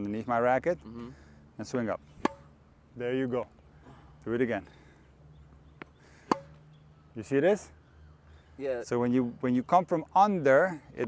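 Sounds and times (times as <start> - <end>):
racket hitting tennis ball: 2.2 - 2.5, 6.2 - 6.6.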